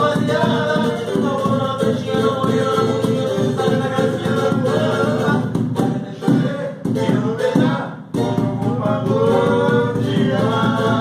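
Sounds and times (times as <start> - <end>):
conga drum beating: 0.0 - 11.0
people singing: 0.0 - 11.0.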